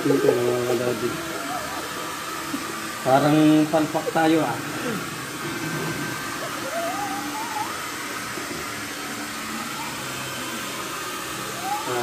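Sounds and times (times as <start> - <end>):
electric blower whooshing hum: 0.0 - 12.0.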